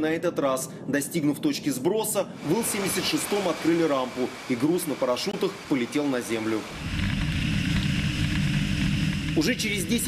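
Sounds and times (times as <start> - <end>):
aircraft engines droning: 2.1 - 10.0
high engine whine: 2.2 - 10.0.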